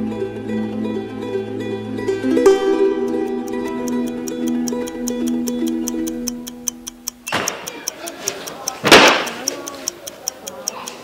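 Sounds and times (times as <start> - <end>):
soft music of held notes: 0.0 - 8.8
clock ticking: 2.8 - 11.0.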